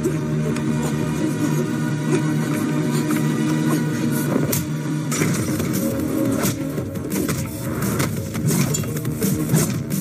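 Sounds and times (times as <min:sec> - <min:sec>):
car engine running: 0:00.0 - 0:10.0
music with low drone: 0:00.0 - 0:10.0.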